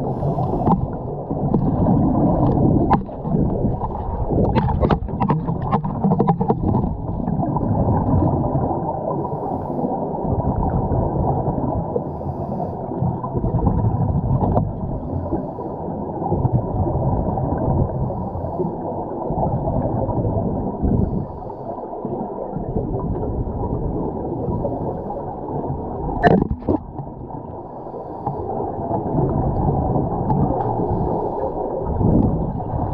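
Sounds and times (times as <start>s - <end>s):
underwater regulator rumble and bubbles: 0.0s - 32.9s.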